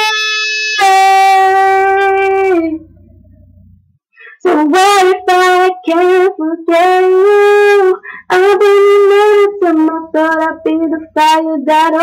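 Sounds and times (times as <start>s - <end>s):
woman singing a long note: 0.0s - 2.9s.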